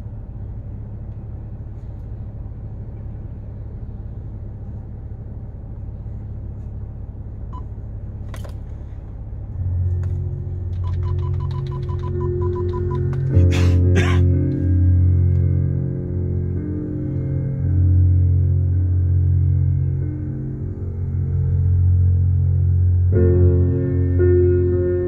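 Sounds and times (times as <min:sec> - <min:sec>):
low rumble in car cabin: 0:00.0 - 0:25.0
music with deep sustained notes: 0:00.0 - 0:25.0.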